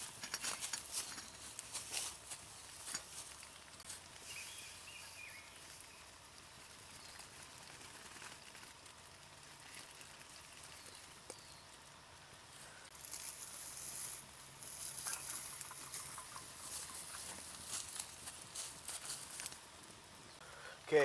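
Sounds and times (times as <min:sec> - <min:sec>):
campfire crackling: 0:00.0 - 0:21.0
soft steady hiss: 0:00.0 - 0:21.0.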